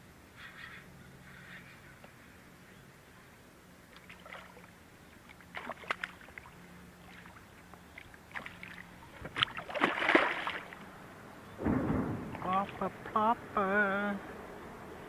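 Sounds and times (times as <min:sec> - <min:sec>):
fish splashing in water: 0:03.9 - 0:10.9.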